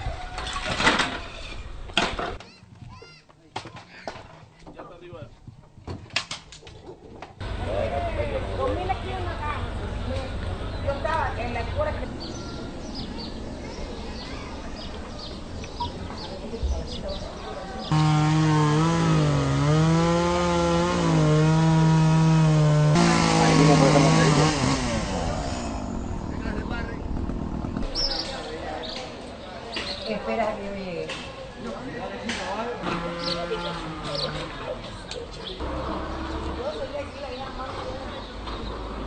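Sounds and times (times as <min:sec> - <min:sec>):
chainsaw cutting branches: 0:17.9 - 0:26.1, 0:32.8 - 0:34.3
low steady rumble: 0:24.9 - 0:27.9.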